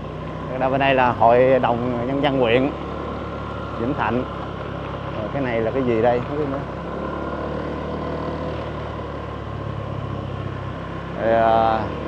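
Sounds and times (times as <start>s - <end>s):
motorbike engine running: 0.0s - 12.0s
road noise: 0.0s - 12.0s.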